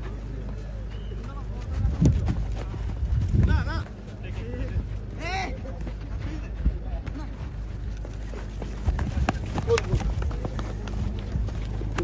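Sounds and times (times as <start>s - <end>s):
players' voices: 0.0s - 12.0s
wind rumble on microphone: 1.5s - 12.0s.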